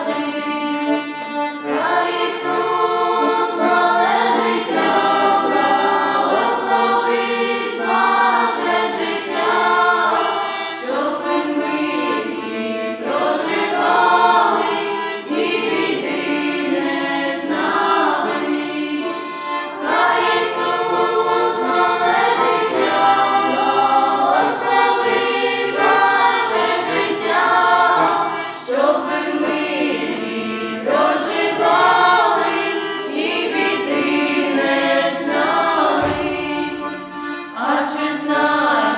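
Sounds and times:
button accordion: 0:00.0 - 0:38.9
group singing a carol: 0:00.0 - 0:38.9.

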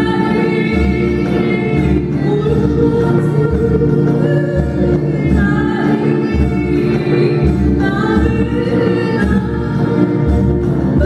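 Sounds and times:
lute: 0:00.0 - 0:11.0
violin: 0:00.0 - 0:11.0
woman singing into a microphone: 0:00.0 - 0:11.0.

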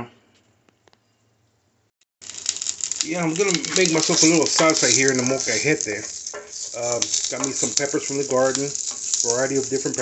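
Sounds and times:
food sizzling in a skillet: 0:02.2 - 0:10.0.

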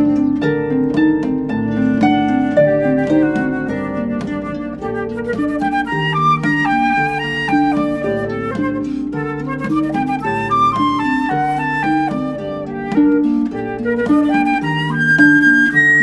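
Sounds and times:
flute melody: 0:00.0 - 0:16.0
harp accompaniment: 0:00.0 - 0:16.0.

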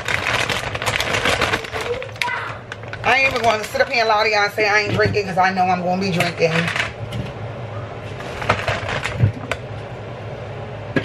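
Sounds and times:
plastic bag rustling: 0:00.0 - 0:05.4, 0:08.0 - 0:09.6.

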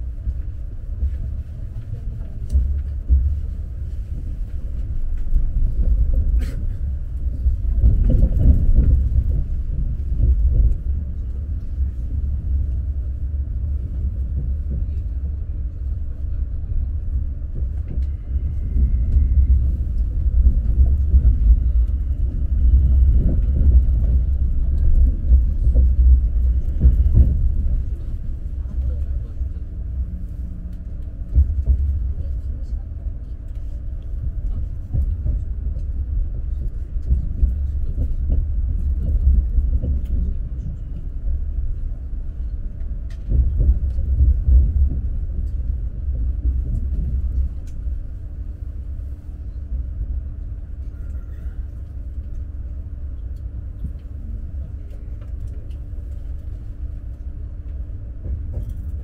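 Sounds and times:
train rumbling at speed: 0:00.0 - 0:59.0.

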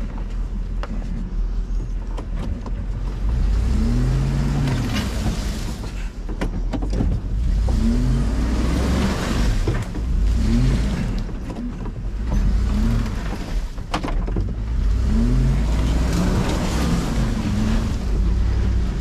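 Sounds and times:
truck engine revving: 0:03.2 - 0:05.9, 0:07.3 - 0:13.8, 0:14.5 - 0:19.0.

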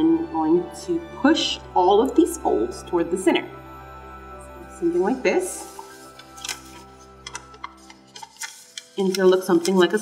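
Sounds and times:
soft background music: 0:00.0 - 0:10.0
paper crinkling and crackling: 0:05.6 - 0:10.0.

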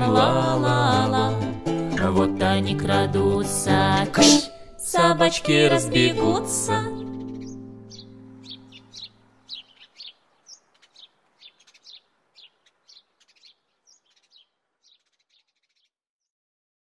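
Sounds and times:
small birds chirping: 0:06.9 - 0:16.0.

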